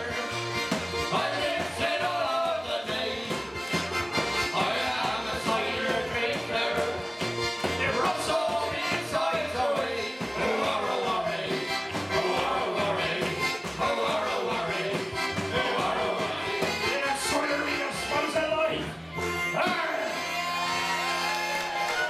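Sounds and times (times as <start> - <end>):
frame drum beat: 0.0 - 18.0
voices singing: 0.0 - 20.7
banjo: 0.0 - 21.0
acoustic guitar: 0.0 - 21.2
folk band playing: 0.0 - 22.0
piano accordion: 0.0 - 22.0.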